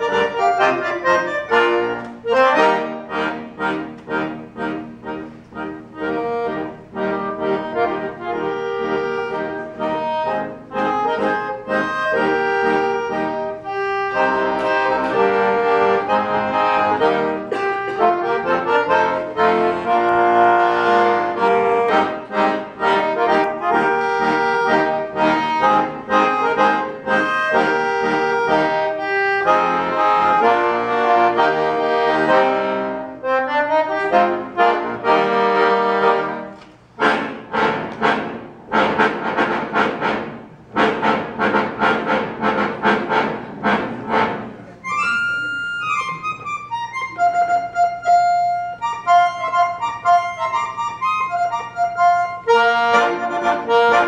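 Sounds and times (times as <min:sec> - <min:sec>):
solo accordion playing a march: 0:00.0 - 0:54.0.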